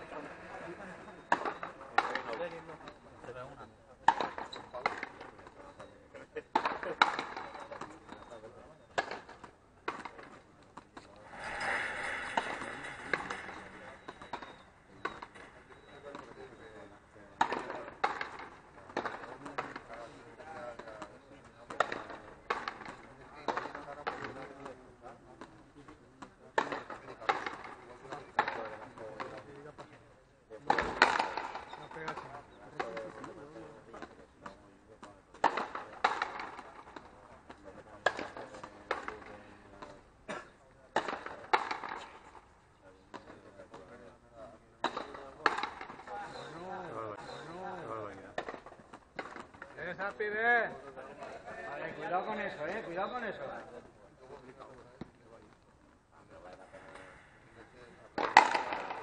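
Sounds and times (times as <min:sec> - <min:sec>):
ball struck by rackets: 0:01.2 - 0:02.4, 0:12.3 - 0:19.9, 0:30.7 - 0:33.0, 0:35.3 - 0:39.9, 0:41.0 - 0:42.4, 0:44.8 - 0:47.5, 0:48.3 - 0:49.8, 0:58.2 - 0:59.0
ball cracking off concrete wall: 0:58.2 - 0:59.0.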